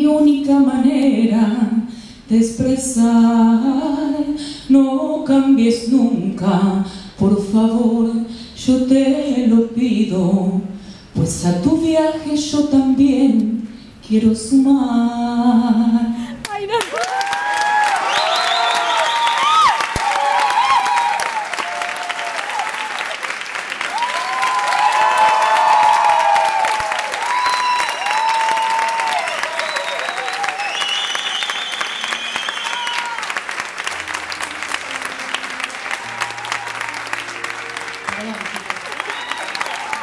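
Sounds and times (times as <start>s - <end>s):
audience applauding and cheering: 16.8s - 40.0s.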